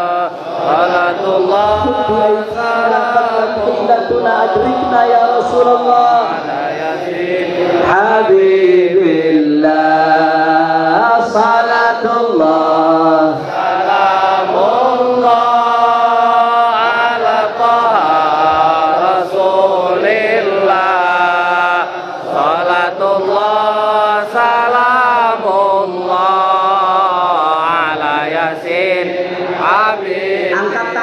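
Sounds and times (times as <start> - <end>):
men chanting together: 0.0 - 31.0.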